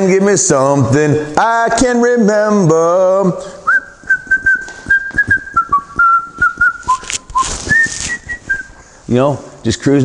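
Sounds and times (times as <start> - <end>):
man whistling a tune: 3.6 - 8.8.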